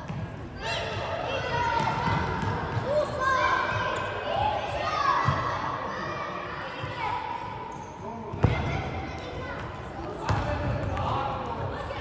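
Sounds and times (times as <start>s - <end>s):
ball kicked in echoing hall: 0.0s - 3.2s, 8.2s - 11.6s.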